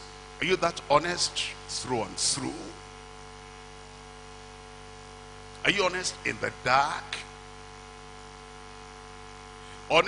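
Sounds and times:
electrical mains hum: 0.0 - 10.0
man talking: 0.4 - 2.8, 5.6 - 7.4.

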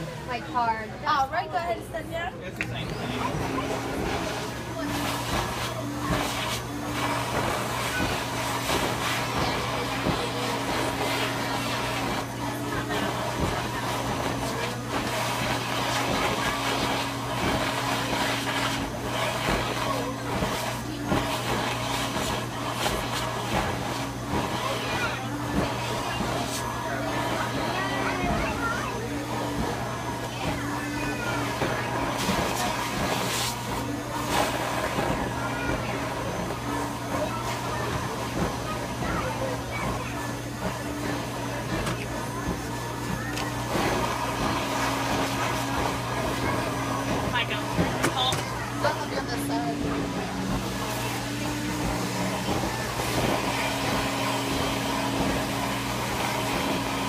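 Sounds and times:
blower humming: 0.0 - 57.0.

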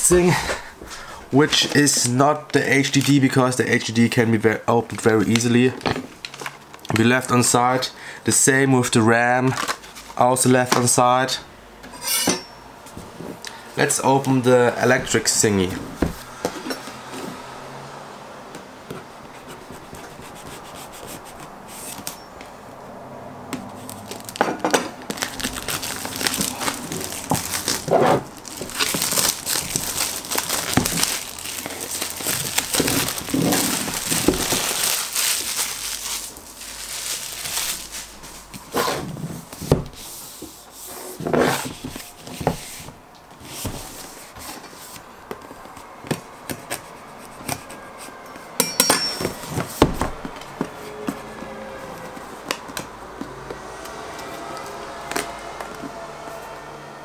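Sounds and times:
plastic wrap crinkling: 23.7 - 38.5
knife slitting plastic wrap: 25.1 - 38.3
cardboard box being opened: 25.1 - 38.5.

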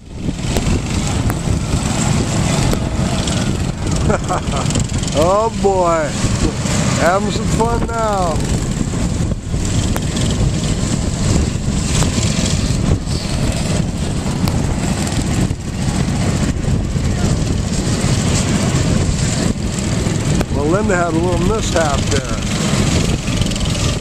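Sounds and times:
go-kart engines running: 0.0 - 24.0.

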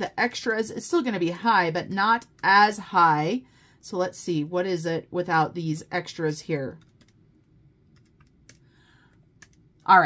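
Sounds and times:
woman speaking: 0.0 - 6.8
calculator keys clicking: 6.8 - 7.2, 9.4 - 9.6.

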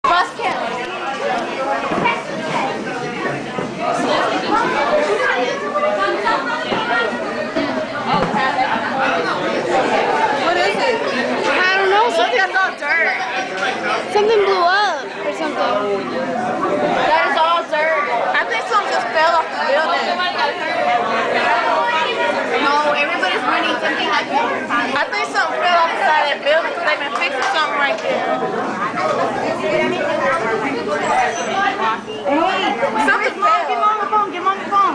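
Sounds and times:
excited overlapping chatter: 0.0 - 34.9
people talking at once: 0.0 - 34.9.

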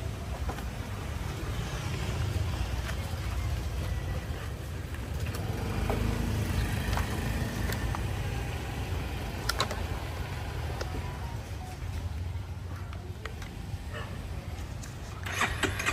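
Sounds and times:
motorbike engines rumbling: 0.0 - 15.9.

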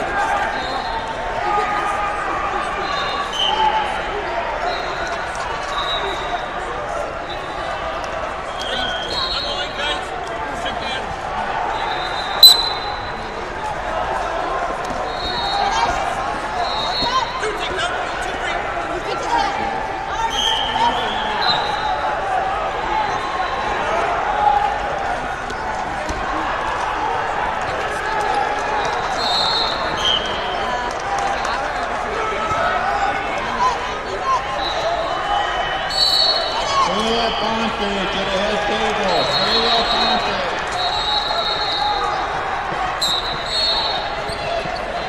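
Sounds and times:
murmur of voices: 0.0 - 45.0
referee whistle blasts: 11.8 - 13.3, 16.6 - 17.4, 29.1 - 30.4, 35.8 - 42.1, 43.0 - 44.4.

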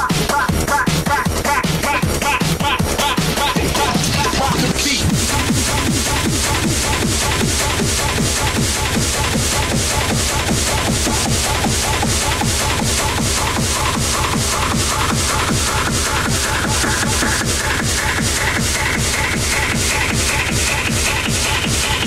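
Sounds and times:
fast kick drum: 0.0 - 22.0
hard techno music: 0.0 - 22.0.

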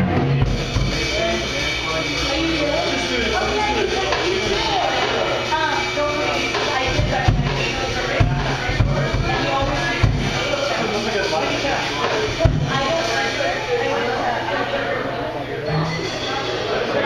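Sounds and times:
heavy low drum hits: 0.0 - 13.4
live jazz group playing: 0.0 - 17.0
voices in the room: 0.0 - 17.0.

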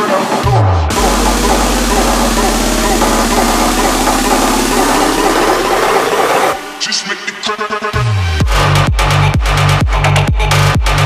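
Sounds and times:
sparse electronic hits: 0.9 - 6.8
distorted noise wash with rising sweep: 0.9 - 7.9.

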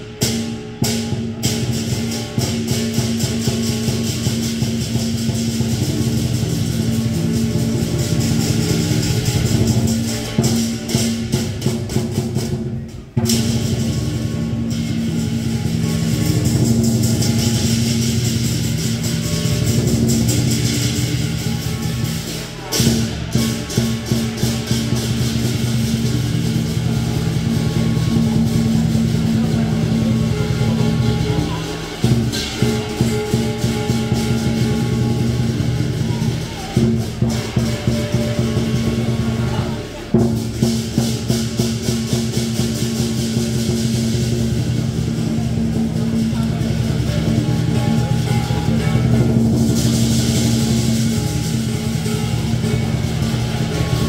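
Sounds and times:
cymbals: 0.0 - 54.0
drum: 0.0 - 54.0
gong: 0.0 - 54.0.

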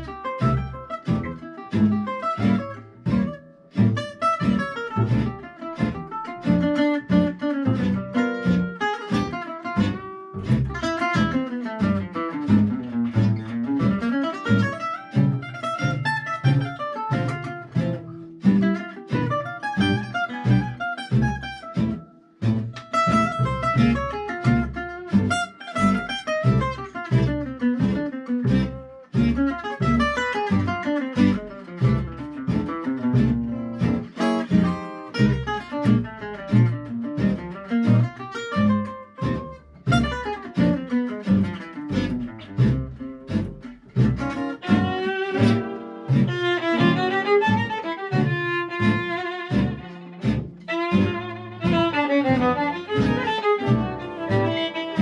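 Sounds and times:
plucked double bass: 0.0 - 55.0
rhythm guitar: 0.0 - 55.0.

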